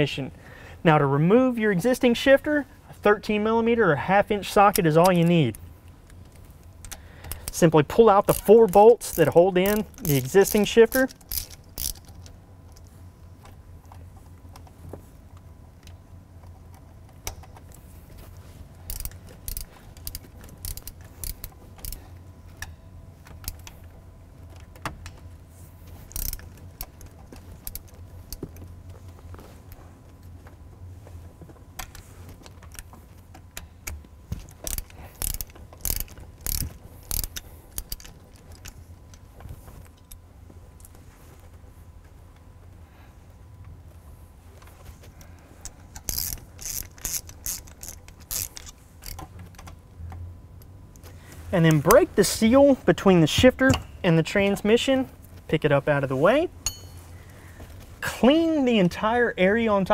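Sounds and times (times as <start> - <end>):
hand ratchet clicking: 6.8 - 12.3, 18.9 - 23.9, 26.0 - 28.6, 31.8 - 39.2, 45.7 - 49.7
metal tools clinking: 56.6 - 57.2.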